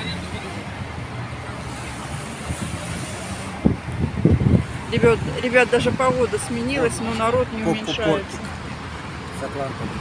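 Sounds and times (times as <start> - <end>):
city street traffic: 0.0 - 10.0
wind buffeting microphone: 2.1 - 7.6.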